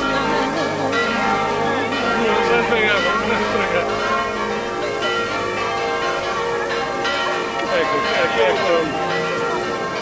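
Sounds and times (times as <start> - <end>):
bells ringing: 0.0 - 10.0.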